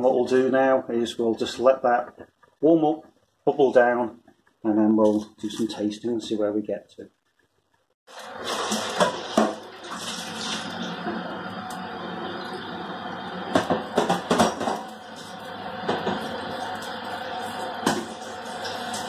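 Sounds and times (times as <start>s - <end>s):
liquid boiling in a saucepan: 7.2s - 19.0s.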